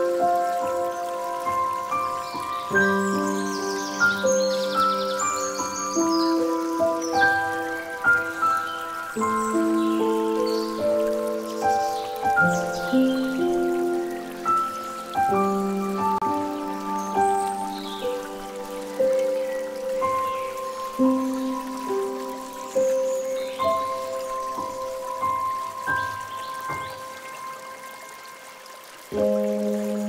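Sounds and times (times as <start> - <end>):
calm instrumental music: 0.0 - 30.0
water trickling into a pool: 0.0 - 30.0.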